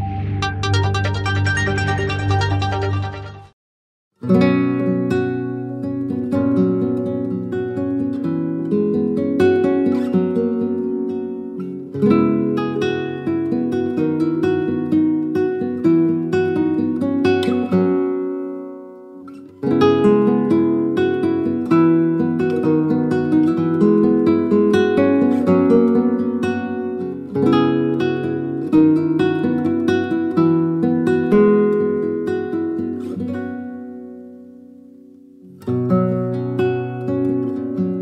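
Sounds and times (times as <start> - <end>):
acoustic guitar music: 0.0 - 3.6, 4.2 - 38.0.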